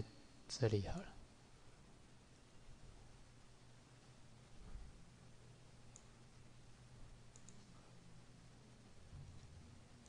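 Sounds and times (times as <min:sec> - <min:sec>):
low steady hum: 0:00.0 - 0:10.0
computer mouse clicks: 0:05.9 - 0:06.2, 0:07.3 - 0:07.7.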